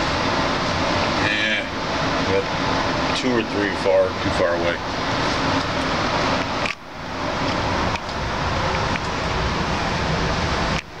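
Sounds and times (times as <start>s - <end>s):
rushing background noise: 0.0s - 11.0s.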